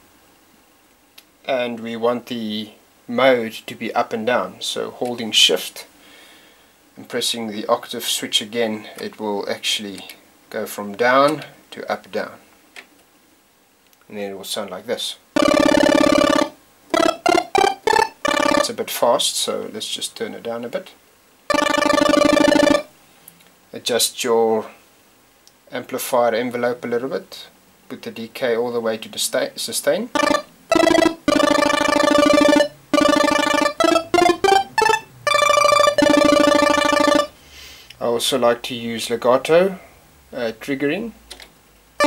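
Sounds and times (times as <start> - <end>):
fast arpeggiated chiptune synth: 15.4 - 18.7, 21.5 - 22.9, 30.2 - 37.3.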